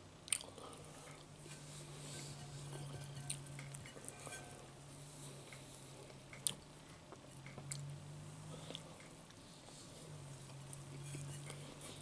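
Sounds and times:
steady low hum: 0:00.0 - 0:12.0
man chewing food: 0:00.2 - 0:12.0.

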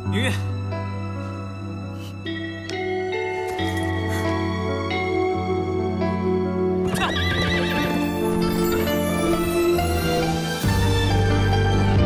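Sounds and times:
background music: 0:00.0 - 0:12.0
horse whinnying: 0:06.8 - 0:09.7.

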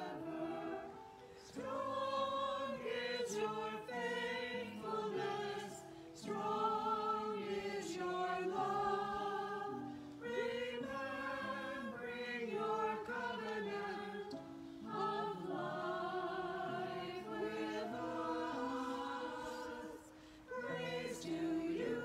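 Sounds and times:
group singing a hymn: 0:00.0 - 0:22.0.

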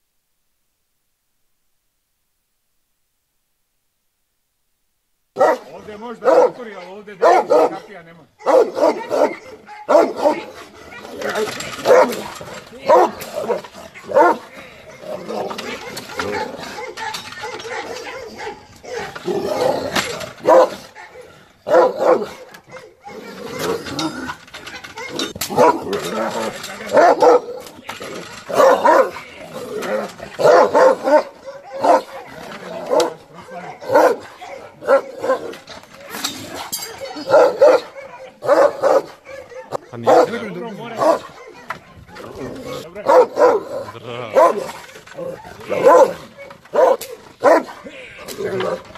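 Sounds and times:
dogs barking: 0:05.4 - 0:48.9.

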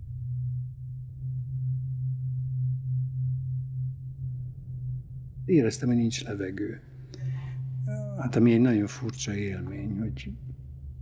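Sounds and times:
low steady drone tone: 0:00.0 - 0:11.0.

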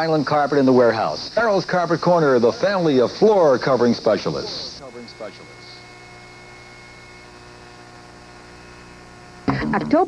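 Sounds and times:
mains hum: 0:00.0 - 0:10.0.

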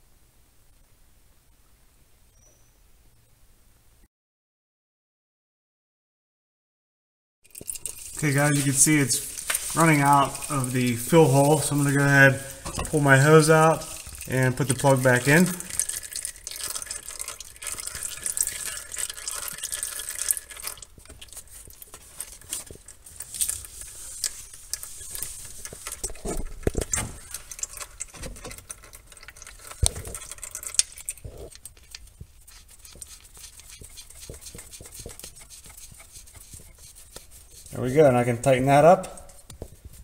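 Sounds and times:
oil trickling into a pan: 0:07.4 - 0:37.7.

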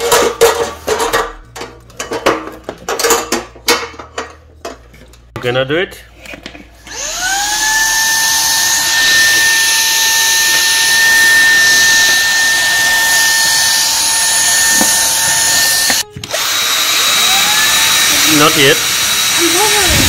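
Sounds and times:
cordless vacuum cleaner running: 0:06.8 - 0:20.0.

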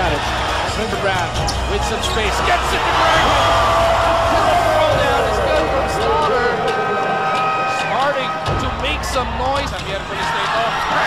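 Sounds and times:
background music: 0:00.0 - 0:11.0
broadcast and arena voices: 0:00.0 - 0:11.0.

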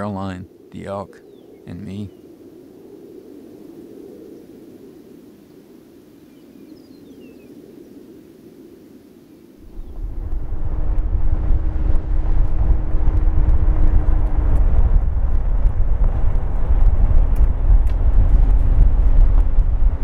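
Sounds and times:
faint low hum: 0:09.6 - 0:20.0
vehicle driving rumble: 0:09.6 - 0:20.0.

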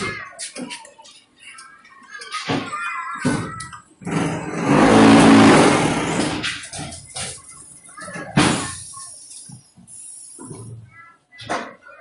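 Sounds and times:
brick making machine running: 0:04.0 - 0:06.7.

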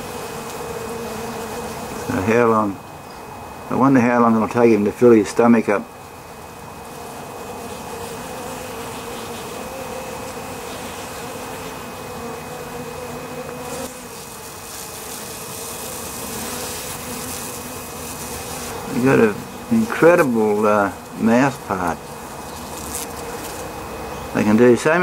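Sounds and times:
bees buzzing: 0:00.0 - 0:25.0.

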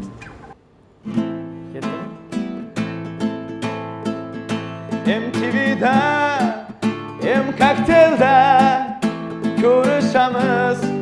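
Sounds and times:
classical guitar strumming: 0:00.0 - 0:11.0.

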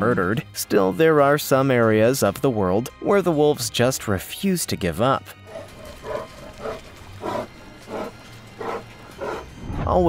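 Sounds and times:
faint background music: 0:00.0 - 0:10.0
wild animal calling: 0:05.4 - 0:09.5.

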